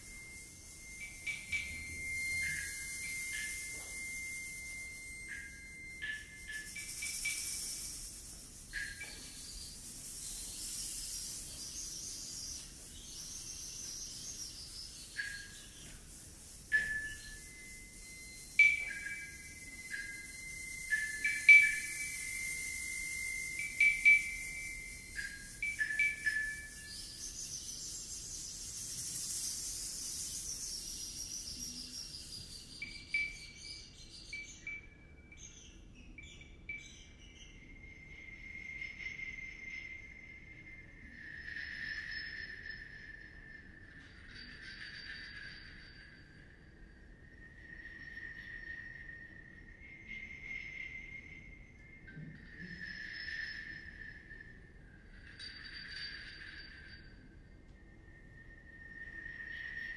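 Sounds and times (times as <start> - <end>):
high rustling hiss: 0.0 - 33.6
held whistle-like tone: 0.0 - 35.3, 36.5 - 59.9
bird-like percussion chirps: 0.0 - 47.0, 47.6 - 57.2.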